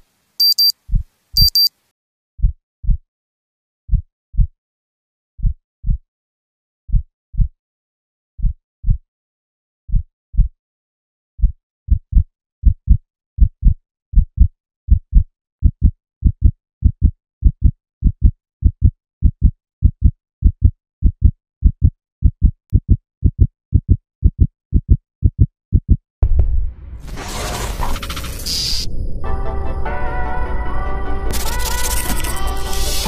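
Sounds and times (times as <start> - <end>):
heartbeat thumps: 0.9 - 1.6, 2.4 - 3.0, 3.9 - 4.5, 5.4 - 6.0, 6.9 - 7.5, 8.4 - 9.0, 9.9 - 10.6, 11.4 - 26.6
loud burst of noise: 26.2 - 29.2.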